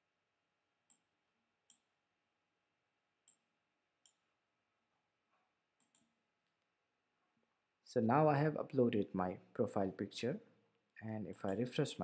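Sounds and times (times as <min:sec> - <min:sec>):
computer mouse clicks: 0:03.2 - 0:03.4, 0:04.0 - 0:04.2, 0:05.8 - 0:06.2, 0:11.3 - 0:11.8.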